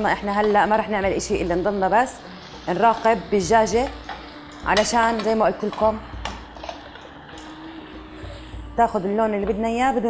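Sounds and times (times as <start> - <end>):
woman speaking: 0.0 - 4.0, 8.7 - 10.0
chicken sizzling in hot oil: 0.0 - 9.9.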